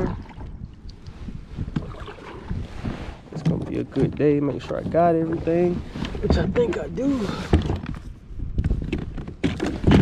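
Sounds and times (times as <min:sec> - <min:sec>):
dull knocks and clunks on plastic: 0:08.6 - 0:10.0.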